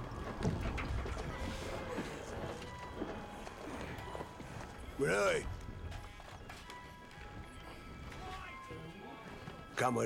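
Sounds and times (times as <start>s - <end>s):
horse hooves clopping: 0.0s - 10.0s
soft film score: 0.0s - 10.0s.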